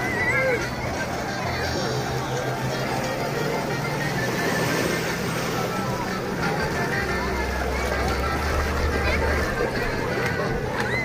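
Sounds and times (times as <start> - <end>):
many people's voices: 0.0 - 11.0
music: 0.0 - 11.0.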